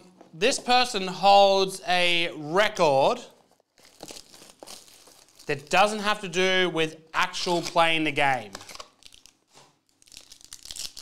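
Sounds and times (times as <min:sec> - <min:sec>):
person speaking: 0:00.0 - 0:03.4, 0:05.4 - 0:08.7
plastic shrink-wrap crinkling and tearing: 0:03.4 - 0:06.3, 0:07.3 - 0:11.0.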